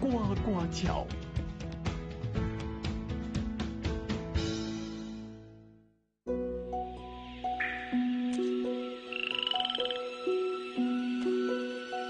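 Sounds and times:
light melodic music: 0.0 - 5.7, 6.3 - 12.0
cartoon frog croak trill: 9.1 - 10.1.

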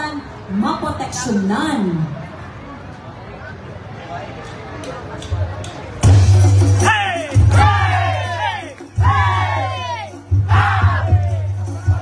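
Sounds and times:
drum-heavy dance music: 6.0 - 12.0
group of voices yelling: 6.8 - 12.0.

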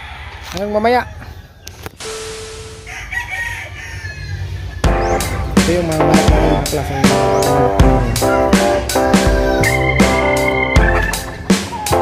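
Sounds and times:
distant rooster crowing: 0.0 - 5.4, 6.7 - 7.6, 11.0 - 12.0
music: 4.8 - 12.0.

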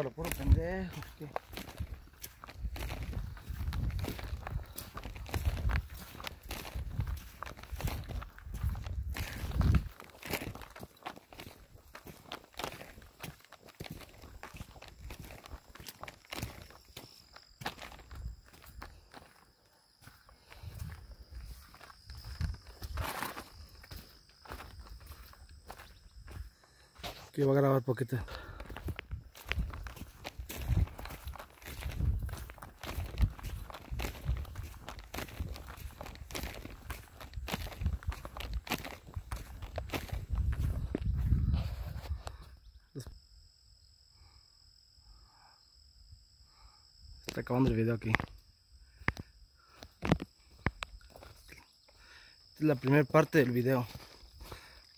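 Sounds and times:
footsteps on muddy stony road: 0.0 - 42.5, 49.6 - 51.8, 52.4 - 54.9.

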